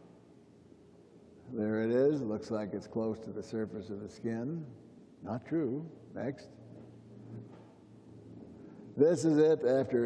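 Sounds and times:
low electrical hum: 0:00.0 - 0:10.0
quiet hiss: 0:00.0 - 0:10.0.

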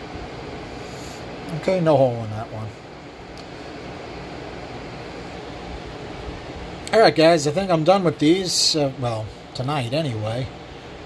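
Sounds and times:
mechanical hum and hiss: 0:00.0 - 0:11.0.

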